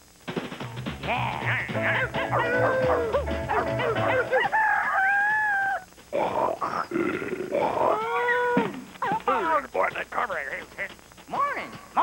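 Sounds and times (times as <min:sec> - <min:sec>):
bass beat: 0:00.6 - 0:04.3
wailing howl-like vocals: 0:02.0 - 0:05.8, 0:07.6 - 0:08.7.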